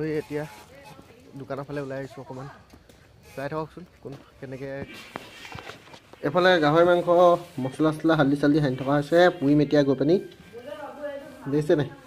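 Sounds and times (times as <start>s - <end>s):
man speaking: 0.0s - 2.6s, 3.2s - 5.1s, 6.2s - 10.5s, 11.2s - 12.0s
soft footsteps: 0.6s - 12.0s.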